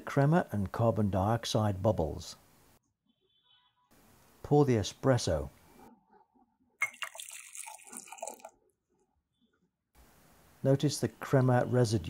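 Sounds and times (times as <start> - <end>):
espresso trickling into mug: 6.8 - 8.5.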